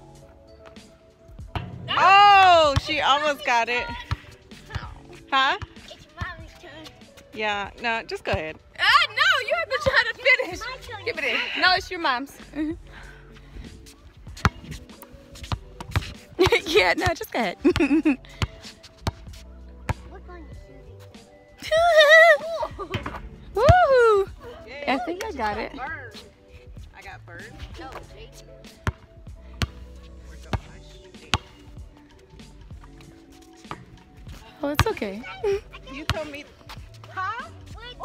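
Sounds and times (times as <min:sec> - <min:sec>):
faint background music: 0:00.0 - 0:38.0
basketball bouncing on asphalt: 0:01.4 - 0:06.8, 0:07.8 - 0:08.6, 0:14.4 - 0:14.8, 0:15.4 - 0:20.1, 0:28.8 - 0:32.0, 0:33.7 - 0:38.0
basketball bouncing: 0:34.7 - 0:35.2, 0:35.9 - 0:36.4.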